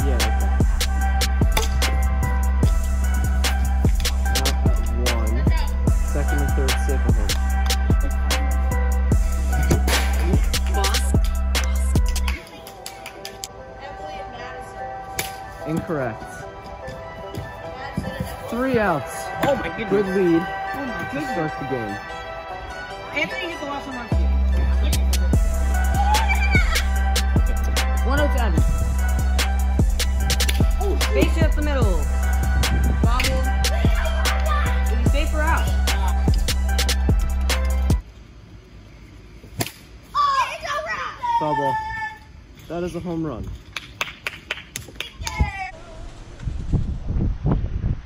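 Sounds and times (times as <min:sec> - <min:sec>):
background music: 0:00.0 - 0:38.0.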